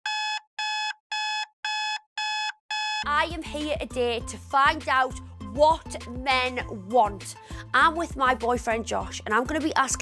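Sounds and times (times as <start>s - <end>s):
electronic alarm beeping: 0.0s - 3.1s.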